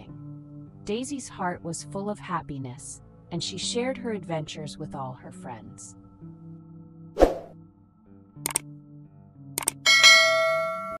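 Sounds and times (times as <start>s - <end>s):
quick swoosh: 7.2s - 7.6s
click sound effect: 8.4s - 8.6s, 9.6s - 9.8s.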